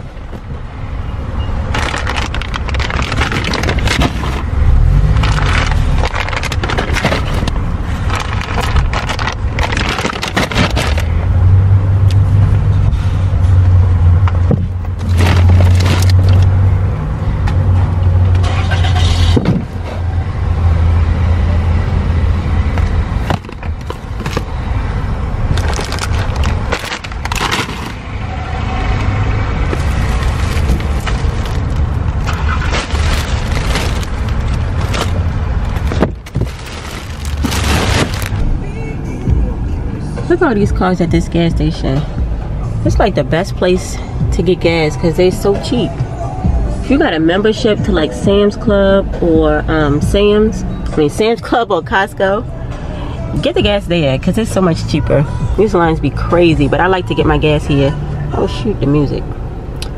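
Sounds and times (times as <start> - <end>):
groceries knocking and scraping: 1.6 - 11.2, 14.3 - 16.6, 22.7 - 28.1, 29.0 - 38.5
low rumble: 1.8 - 16.7, 24.0 - 40.3.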